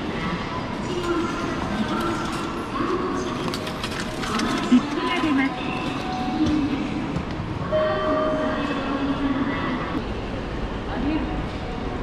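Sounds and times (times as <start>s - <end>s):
railway station ambience: 0.0s - 12.0s.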